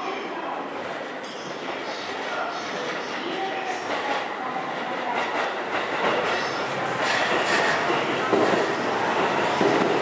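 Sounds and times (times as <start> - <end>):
electric train wheels on rails: 1.2 - 10.0.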